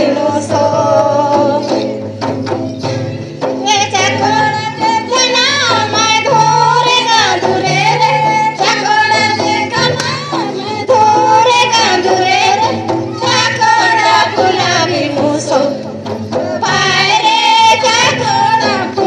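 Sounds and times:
group of voices singing: 0.0s - 2.5s, 3.6s - 19.0s
rhythmic drum beat: 0.0s - 19.0s.

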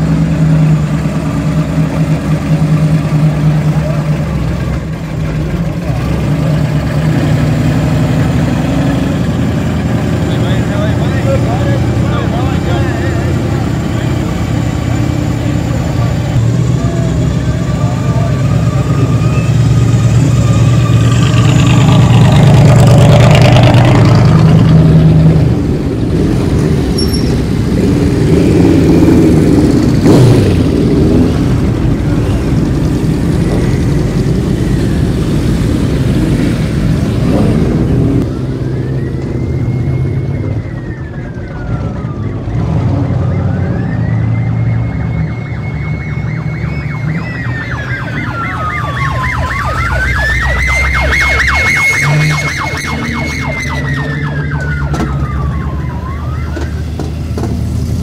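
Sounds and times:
car engines revving: 0.0s - 58.0s
police siren wailing: 9.5s - 22.4s, 31.7s - 57.5s.

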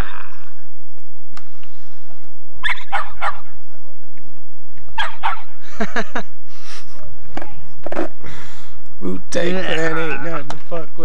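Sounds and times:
dog barking: 2.6s - 3.5s, 5.0s - 5.5s.

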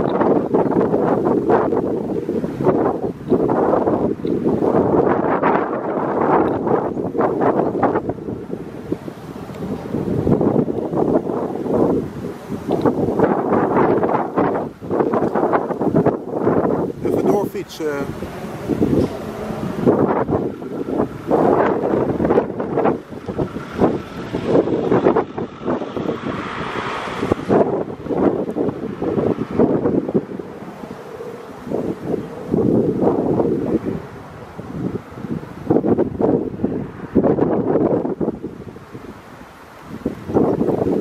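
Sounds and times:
wind buffeting microphone: 0.0s - 41.0s.

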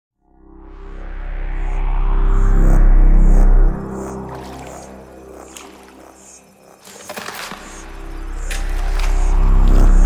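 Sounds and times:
deep bass swell: 0.5s - 4.3s.

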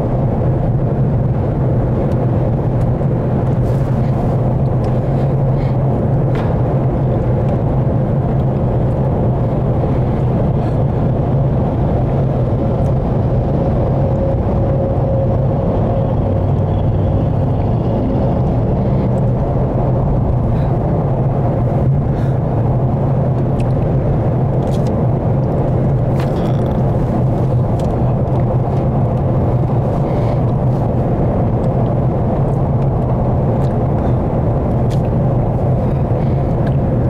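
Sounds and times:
car engine and tyre drone: 0.0s - 37.0s.

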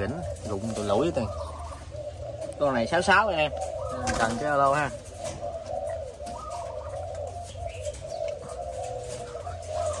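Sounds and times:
doves cooing: 0.0s - 10.0s.

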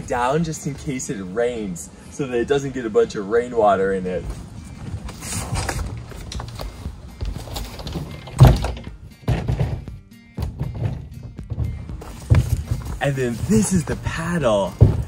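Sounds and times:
kayak scraping on wood: 4.4s - 8.4s, 10.5s - 15.0s
kayak thunk on deck boards: 8.2s - 13.0s, 14.7s - 15.0s.

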